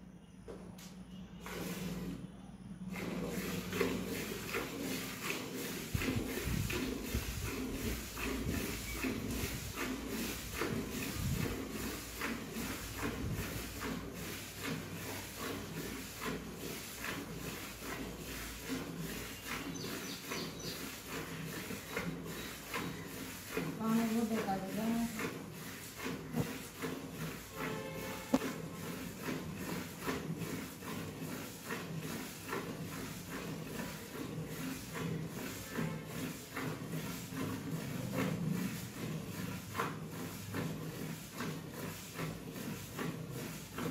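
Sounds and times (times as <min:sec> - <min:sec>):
milk squirting into steel bucket: 0:02.9 - 0:43.9.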